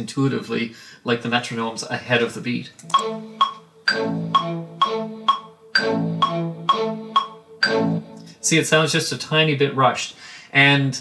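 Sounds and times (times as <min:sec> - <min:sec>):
metronome clicking: 0:02.8 - 0:08.4
synth strings: 0:02.8 - 0:08.7.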